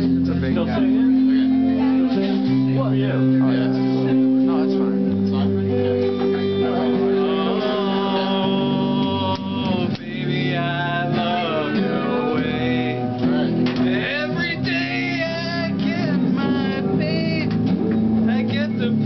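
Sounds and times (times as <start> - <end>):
electric guitar bent notes: 0.0 - 19.0.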